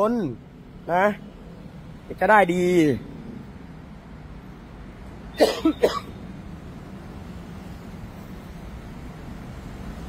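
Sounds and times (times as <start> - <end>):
man coughing: 5.4 - 6.1.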